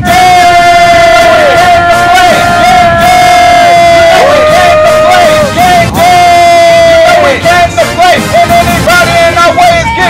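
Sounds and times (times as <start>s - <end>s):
crowd yelling drawn-out shouts: 0.0s - 10.0s.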